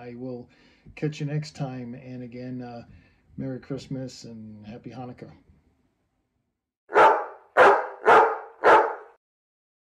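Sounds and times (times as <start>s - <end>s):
dog barking: 6.9s - 9.2s.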